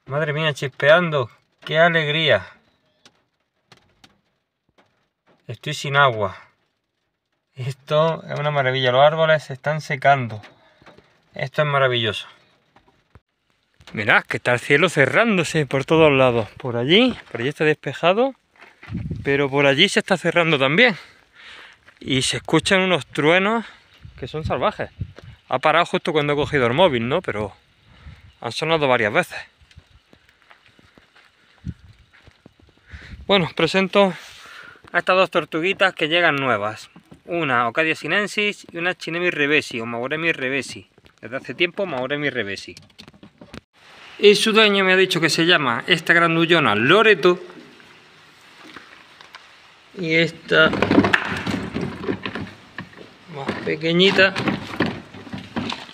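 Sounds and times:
footsteps on gravelly ground: 0:15.6 - 0:17.7, 0:18.4 - 0:23.2, 0:29.2 - 0:35.0.

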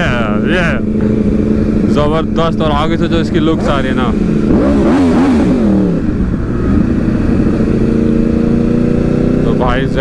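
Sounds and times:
motorcycle engines revving: 0:00.0 - 0:10.0.

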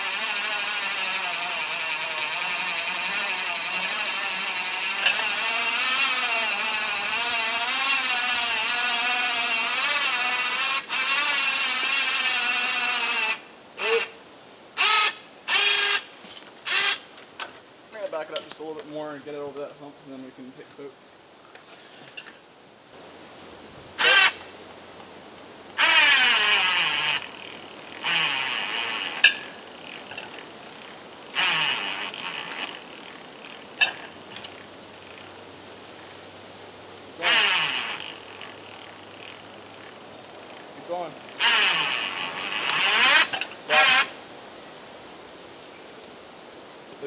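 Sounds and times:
electric winch running: 0:00.0 - 0:13.4.

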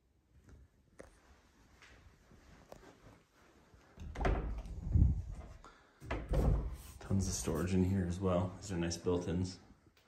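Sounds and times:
closet door thudding open: 0:04.0 - 0:05.0, 0:06.0 - 0:06.9.

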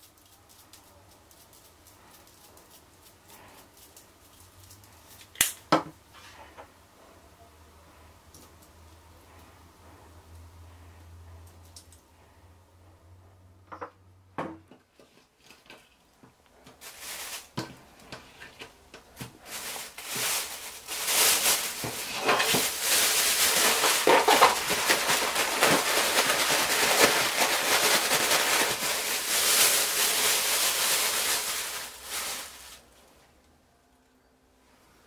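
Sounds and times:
plastic bag crinkling: 0:16.7 - 0:18.6, 0:19.2 - 0:33.1
bag rustling as shaken: 0:16.8 - 0:17.6, 0:19.4 - 0:32.8.

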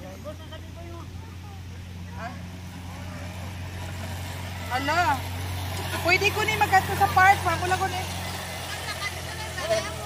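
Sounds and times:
electric scooter motor humming: 0:00.0 - 0:10.0
higher motor tone: 0:00.8 - 0:10.0.

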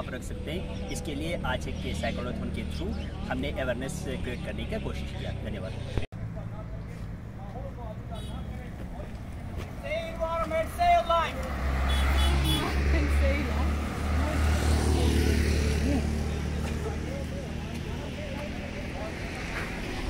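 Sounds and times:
vehicle passing with low rumble: 0:00.3 - 0:20.0.

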